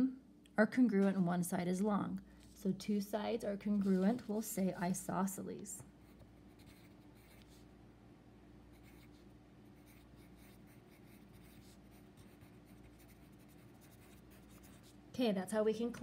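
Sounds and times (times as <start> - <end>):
low room hum: 0.0 - 16.0
pencil writing on paper: 6.0 - 7.6, 9.8 - 14.9.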